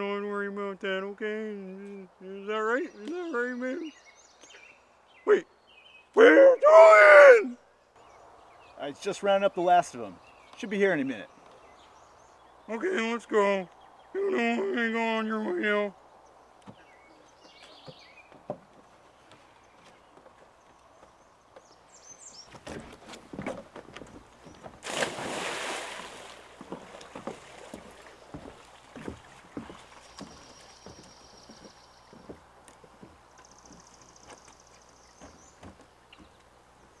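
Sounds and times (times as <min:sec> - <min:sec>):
footsteps on wooden boardwalk: 0:10.2 - 0:12.1, 0:16.5 - 0:25.1, 0:25.8 - 0:36.7.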